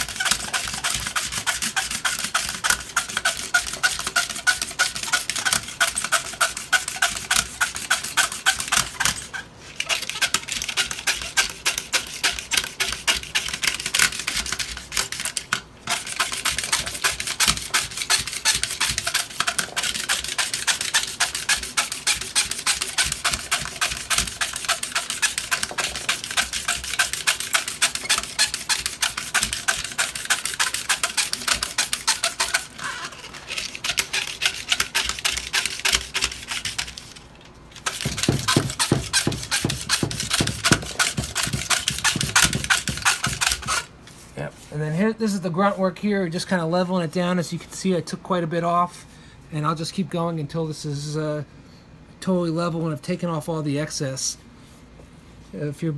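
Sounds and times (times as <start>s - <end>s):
razor blades scraping stone: 0.0s - 37.2s, 37.8s - 43.9s.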